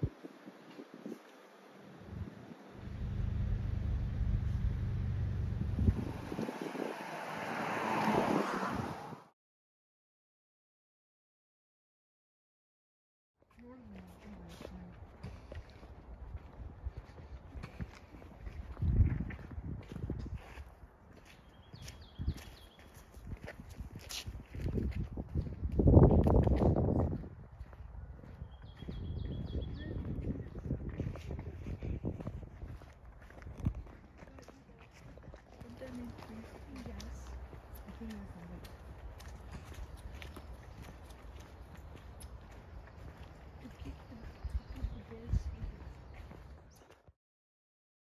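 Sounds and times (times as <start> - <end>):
footsteps walking: 13.5 - 29.0, 30.0 - 47.1.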